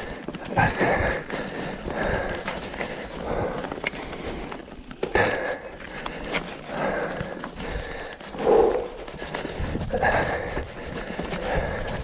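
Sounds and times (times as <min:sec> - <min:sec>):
bike rumbling on rocky trail: 0:00.0 - 0:12.0
person breathing hard: 0:00.0 - 0:12.0.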